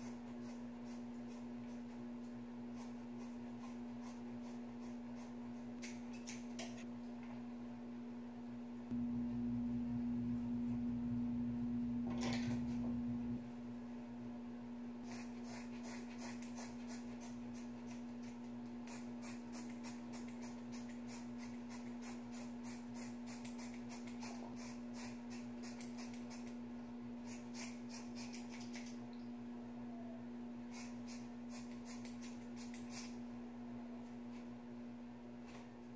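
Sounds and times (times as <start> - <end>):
steady hum: 0.0 - 35.9
scissors snipping hair: 2.7 - 6.8, 15.1 - 26.6, 27.2 - 29.0, 30.7 - 33.2.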